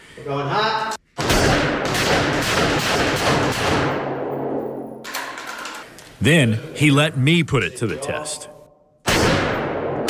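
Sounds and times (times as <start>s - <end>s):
rapid rifle gunshots echoing indoors: 1.1s - 5.8s, 9.0s - 10.0s.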